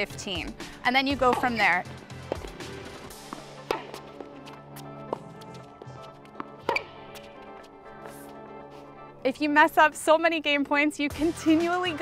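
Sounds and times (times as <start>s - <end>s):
background music: 0.0s - 12.0s
tennis balls struck by racquets: 0.2s - 8.9s.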